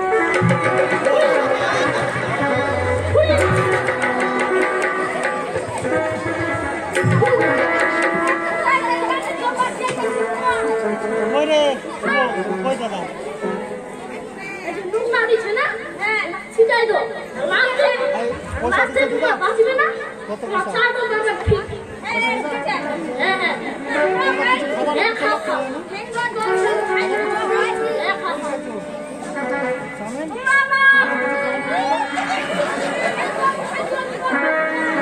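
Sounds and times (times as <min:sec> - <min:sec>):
faint held musical notes: 0:00.0 - 0:35.0
overlapping voices and chatter: 0:00.0 - 0:35.0.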